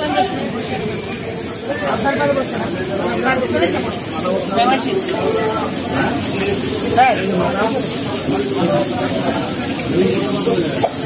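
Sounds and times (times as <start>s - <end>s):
chatter of voices: 0.0s - 11.0s
steady high hiss: 0.0s - 11.0s.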